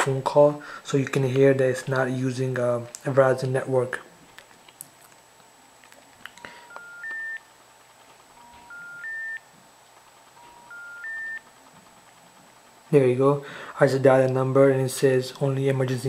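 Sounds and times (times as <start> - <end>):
phone rising intercept tone: 6.4 - 7.5, 8.4 - 9.5, 10.4 - 11.5.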